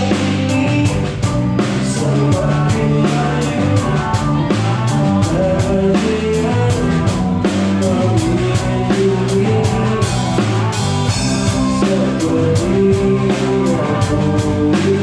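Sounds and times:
drum and cymbal strikes: 0:00.0 - 0:15.0
live rock band playing: 0:00.0 - 0:15.0.

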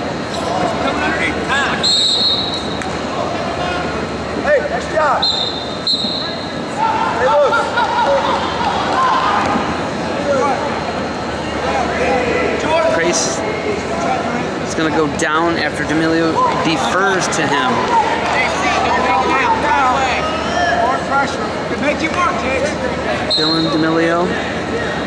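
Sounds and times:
spectators and coaches shouting: 0:00.2 - 0:25.0
short high whistle blasts: 0:01.8 - 0:02.8, 0:05.2 - 0:06.6.

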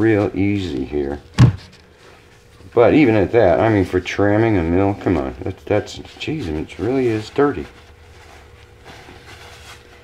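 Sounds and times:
thin steady hum: 0:00.0 - 0:10.0.

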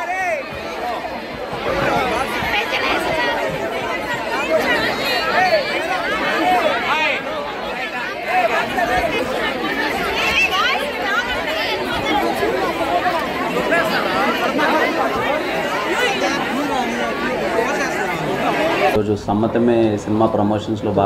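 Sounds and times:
raised voices: 0:00.0 - 0:19.0
crowd babble: 0:00.0 - 0:21.0.

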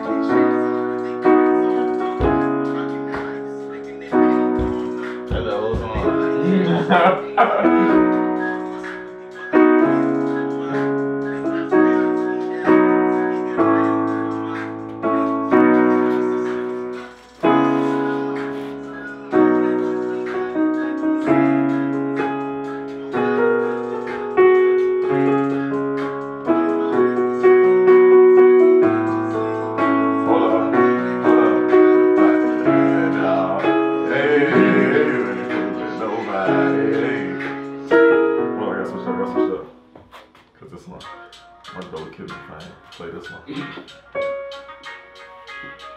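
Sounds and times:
digital piano chords: 0:00.0 - 0:45.9.

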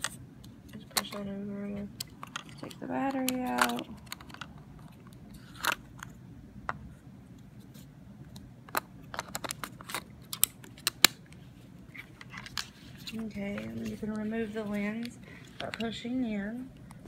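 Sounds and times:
plastic camera clicks and scrapes: 0:02.0 - 0:06.1, 0:08.7 - 0:11.2, 0:11.9 - 0:16.0.

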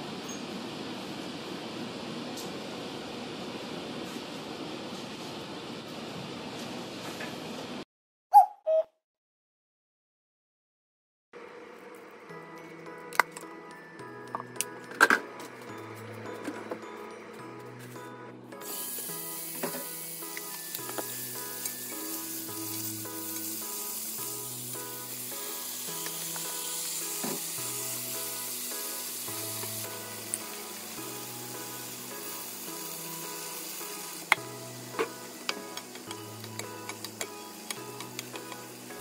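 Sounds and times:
food sizzling in a frying pan: 0:18.6 - 0:39.0.

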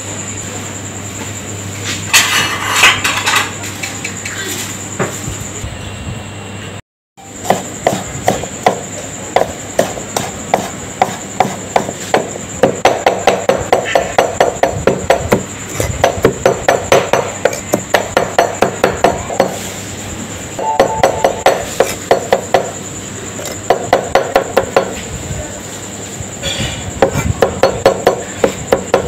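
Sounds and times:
knife chopping on board: 0:07.4 - 0:19.6.

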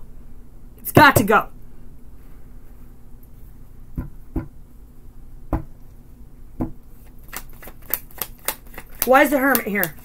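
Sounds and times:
card taps: 0:07.3 - 0:10.0.

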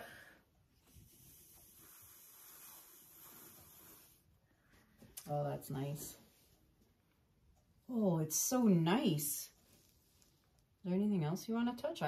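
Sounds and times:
faint breath blowing: 0:01.6 - 0:05.0.

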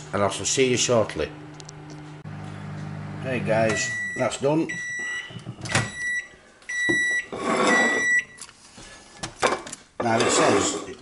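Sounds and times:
microwave oven beeps: 0:02.6 - 0:08.4
plastic tray scraping: 0:10.0 - 0:11.0.

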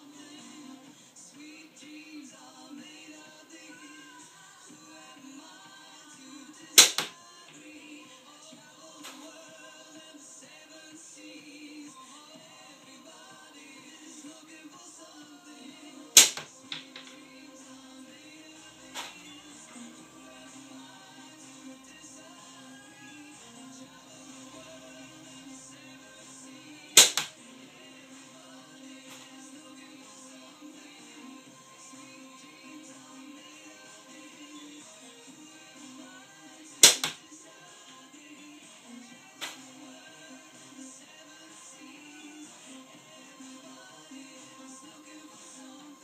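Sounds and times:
background music: 0:00.0 - 0:46.0
slingshot band snap: 0:06.8 - 0:07.1, 0:16.2 - 0:17.1, 0:27.0 - 0:27.3, 0:36.8 - 0:37.2
shot striking target: 0:16.2 - 0:16.5.

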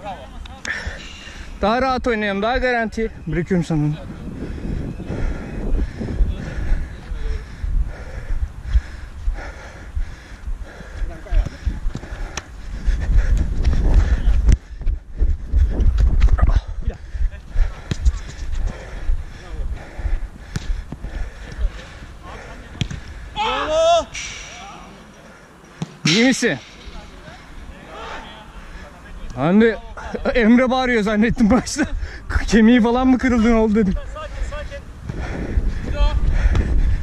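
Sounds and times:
low rumble of movement and wind: 0:00.0 - 0:37.0
distant shouts of players: 0:23.3 - 0:25.0
person yelling in pain: 0:23.4 - 0:24.2.

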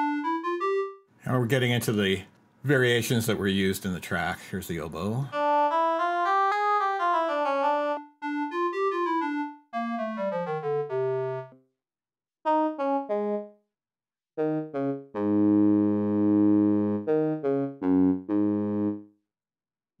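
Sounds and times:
synthesizer bassoon low notes: 0:00.0 - 0:01.0, 0:05.3 - 0:11.6, 0:12.5 - 0:13.6, 0:14.4 - 0:19.1
synthesizer oboe melody: 0:00.0 - 0:01.1, 0:05.3 - 0:11.6, 0:12.5 - 0:13.6, 0:14.4 - 0:19.1.

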